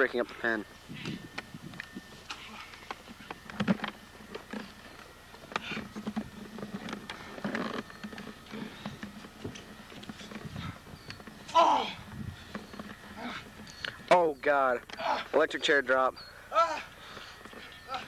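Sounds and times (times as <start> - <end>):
wrestlers scuffling on wooden platform: 0.9 - 14.1, 17.0 - 18.0.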